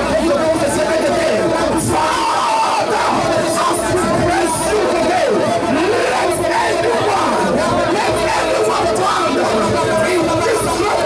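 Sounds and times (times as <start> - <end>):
congregation singing and shouting: 0.0 - 11.0
man's voice through microphone: 0.0 - 11.0.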